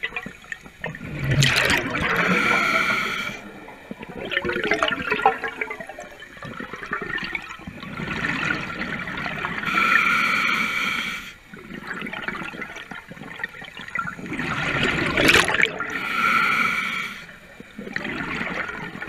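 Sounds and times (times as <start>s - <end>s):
exhaled bubbles gurgling: 0.0s - 19.0s
regulator hissing inhale: 2.0s - 3.6s, 9.6s - 11.5s, 15.8s - 17.6s.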